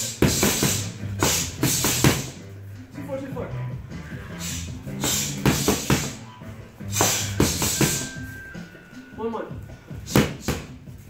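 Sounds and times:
boxing gloves smacking mitts: 0.0s - 2.4s, 5.0s - 6.2s, 6.9s - 8.1s, 10.0s - 10.8s
background music with bass: 0.0s - 11.0s.

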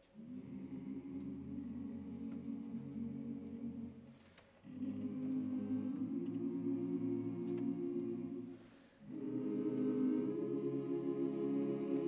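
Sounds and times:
a cappella chorus holding a chord: 0.2s - 12.0s.

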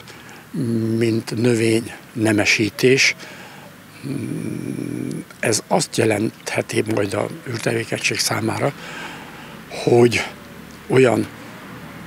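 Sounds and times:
man humming hesitation sound: 3.9s - 5.4s.

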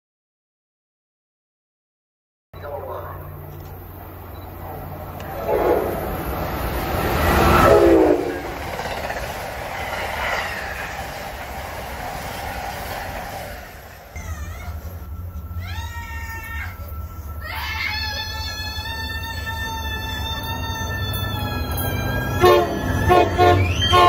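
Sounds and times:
rail clatter: 3.0s - 24.0s
train wheels rushing: 3.4s - 24.0s
train horn: 4.7s - 8.8s, 19.9s - 24.0s.

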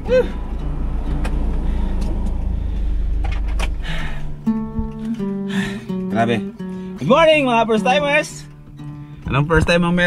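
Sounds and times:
low engine rumble: 0.0s - 6.9s.

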